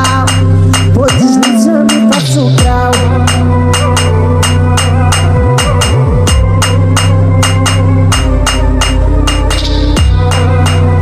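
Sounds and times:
deep sliding bass: 0.0s - 11.0s
steady percussion beat: 0.0s - 11.0s.

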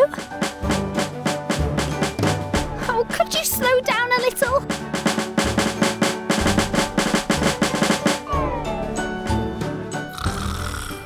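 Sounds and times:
background music: 0.0s - 11.0s
snare drum roll: 0.2s - 2.7s, 4.6s - 8.3s.

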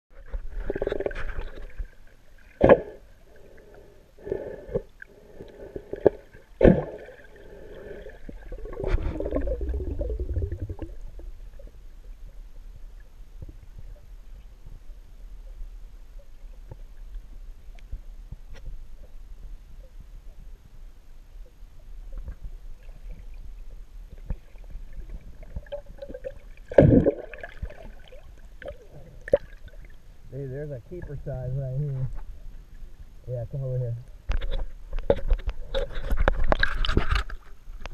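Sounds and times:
underwater gurgling water: 0.1s - 20.6s, 21.3s - 30.2s
low rumble: 8.3s - 24.0s.

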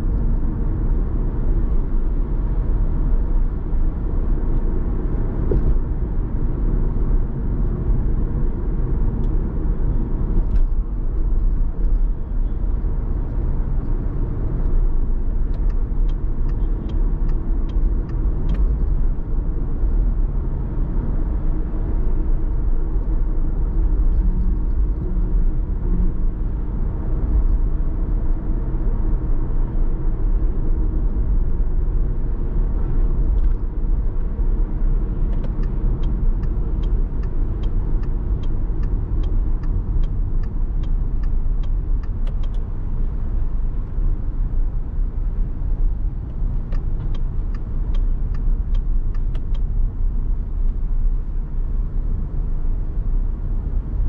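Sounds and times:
car road and engine rumble: 0.0s - 54.0s
turn signal clicking: 13.2s - 19.2s, 32.7s - 44.1s, 46.2s - 49.8s.

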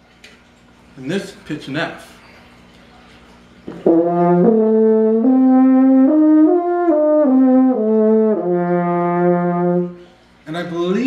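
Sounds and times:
french horn playing notes: 3.8s - 10.1s.

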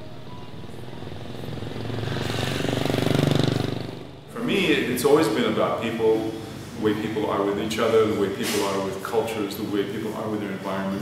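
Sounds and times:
scooter engine passing by: 0.0s - 5.6s.

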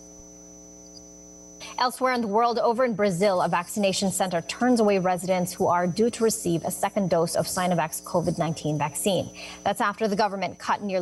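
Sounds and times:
electrical mains hum: 0.0s - 11.0s.

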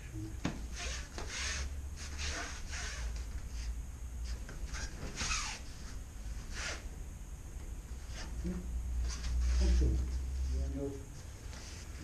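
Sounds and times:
low steady hum: 0.0s - 12.0s
bare feet sliding on mat: 8.0s - 10.6s
cloth rustling: 8.0s - 10.6s.

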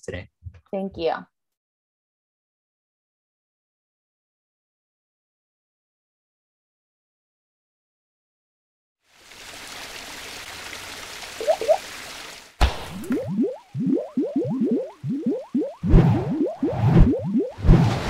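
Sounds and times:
short rising bloops: 11.4s - 11.8s, 12.7s - 18.0s.

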